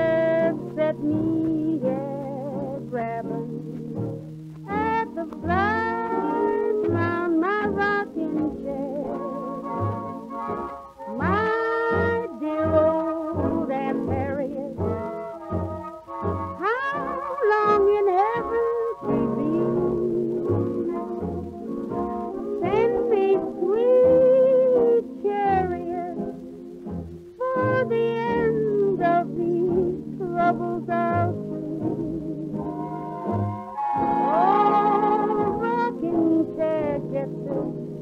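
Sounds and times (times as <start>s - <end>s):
swing dance orchestra: 0.0s - 38.0s.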